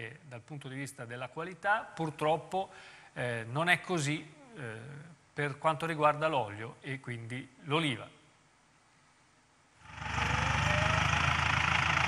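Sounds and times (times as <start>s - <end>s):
tractor engine running: 9.9s - 12.0s.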